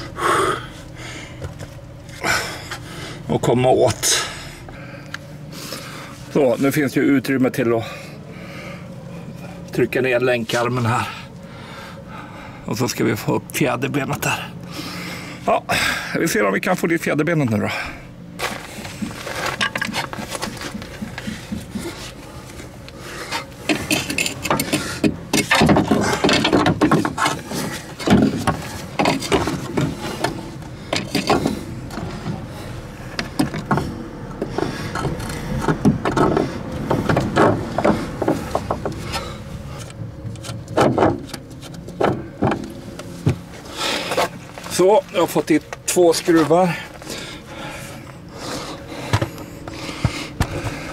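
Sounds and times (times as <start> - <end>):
metal knocks and clunks: 23.7 - 32.4, 33.1 - 39.1, 40.3 - 43.5.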